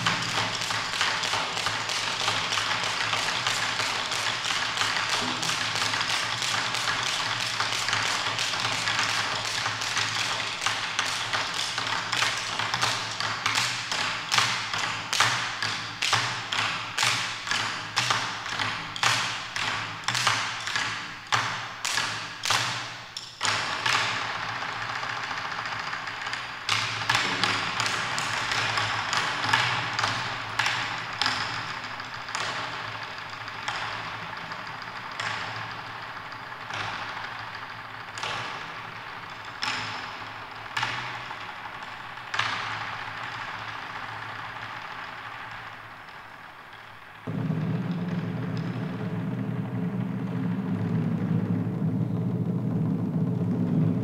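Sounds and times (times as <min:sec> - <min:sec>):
low drum roll rumble: 0:00.0 - 0:01.6, 0:27.1 - 0:39.3, 0:42.9 - 0:54.0
sharp drum strikes in a hall: 0:00.0 - 0:46.6, 0:47.2 - 0:54.0
drum ensemble playing: 0:27.2 - 0:27.9, 0:47.3 - 0:54.0.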